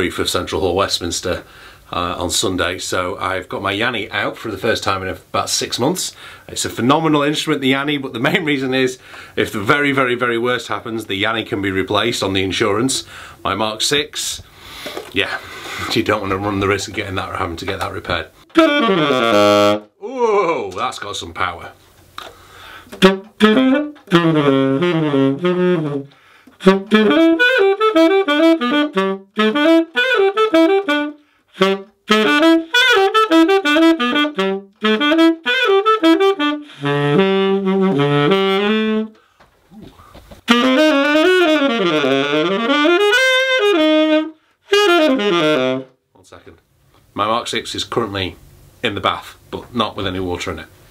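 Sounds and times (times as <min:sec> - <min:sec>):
tenor saxophone jazz phrases: 0:00.0 - 0:50.8.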